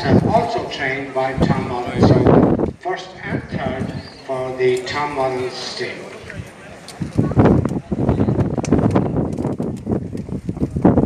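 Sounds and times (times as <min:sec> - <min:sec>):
wind buffeting microphone: 0:00.0 - 0:04.2, 0:06.1 - 0:11.0.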